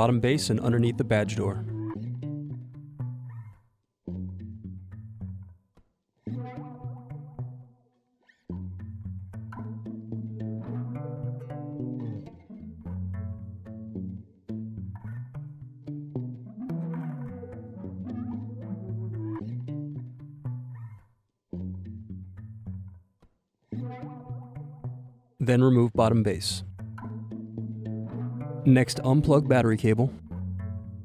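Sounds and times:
instrumental music with plucked bass: 0.0 - 31.0.

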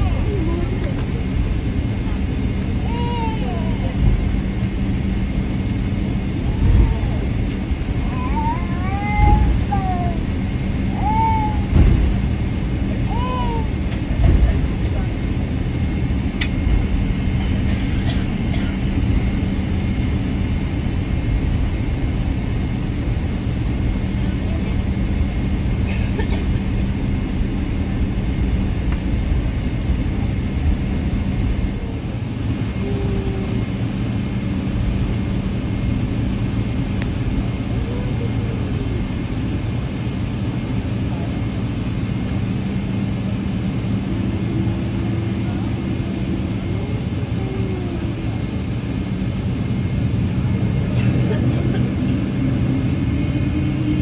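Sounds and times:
aircraft cabin engine rumble: 0.0 - 54.0.

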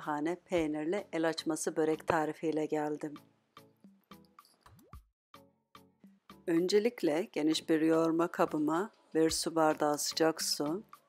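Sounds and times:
very faint background music: 0.0 - 4.2, 5.8 - 11.0.

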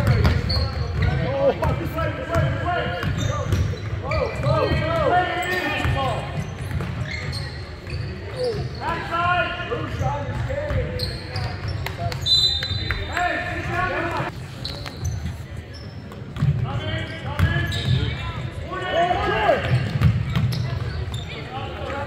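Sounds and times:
people calling out and chattering: 0.0 - 22.0
sneakers squeaking: 0.0 - 22.0.

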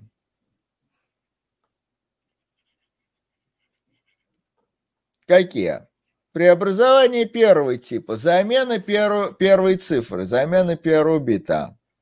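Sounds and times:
stylus scratching on tablet: 2.2 - 4.6.

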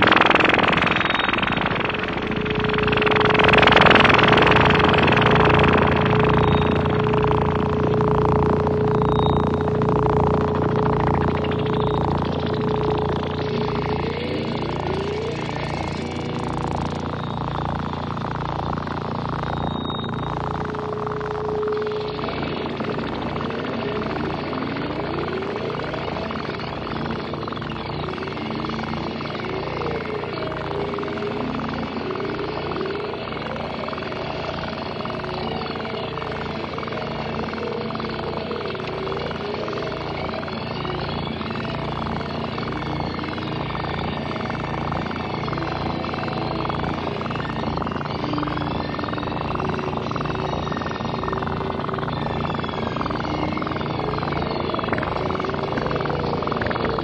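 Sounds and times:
gliding synth tones: 0.0 - 57.0
steady low drone: 0.0 - 57.0
wobbling synthesizer filter sweep: 0.0 - 57.0.

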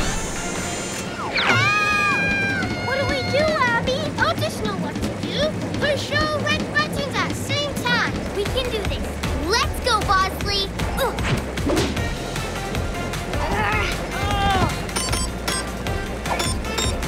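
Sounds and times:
cartoon background music: 0.0 - 17.0
cartoon characters' wordless cries: 1.5 - 3.9.

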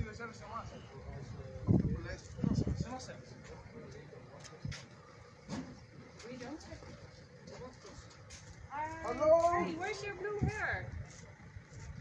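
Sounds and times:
faint voices talking outdoors: 0.0 - 12.0.

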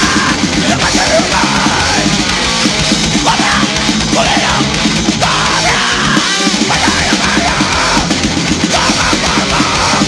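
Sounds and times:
distorted guitars: 0.0 - 10.0
drums: 0.0 - 10.0
person yelling vocals: 3.2 - 8.1, 8.7 - 10.0.

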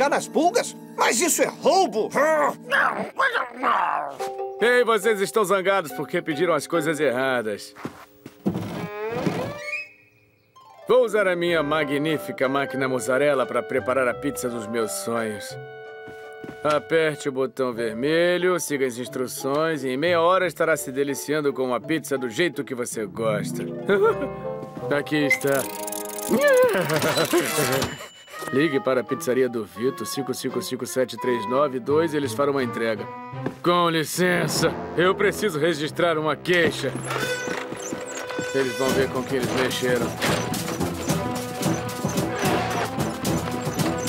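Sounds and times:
background music: 0.0 - 44.0
cartoon machine clatter: 25.4 - 28.1.

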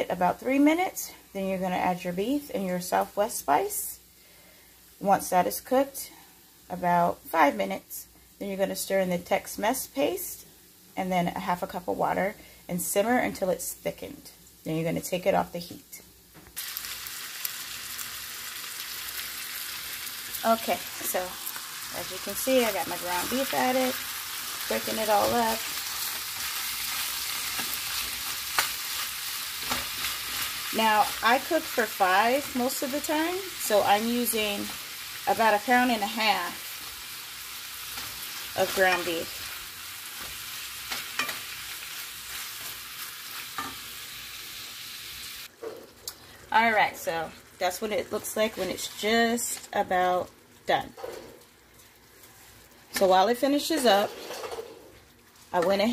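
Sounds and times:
meat and onion sizzling in a pan: 1.4 - 7.6, 8.2 - 11.9, 16.1 - 46.0.

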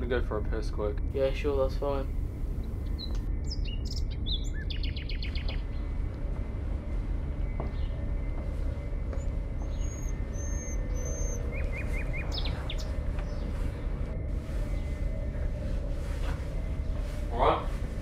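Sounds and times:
low background rumble: 0.0 - 18.0
small birds chirping: 0.0 - 18.0.

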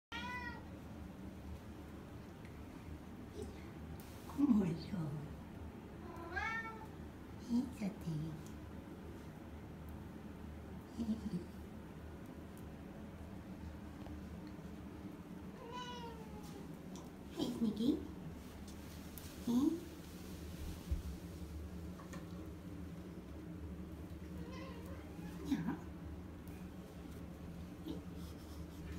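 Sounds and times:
cat meowing: 0.1 - 0.6, 6.0 - 6.9, 15.6 - 16.4
low steady hum: 0.1 - 28.9.

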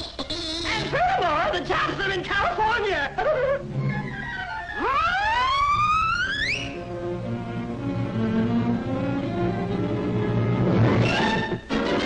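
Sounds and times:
rising cartoon whistle: 4.1 - 6.8
orchestral music: 6.4 - 12.0.

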